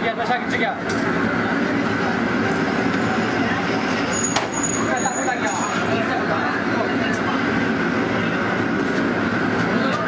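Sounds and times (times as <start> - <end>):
restaurant kitchen rushing noise: 0.0 - 10.0.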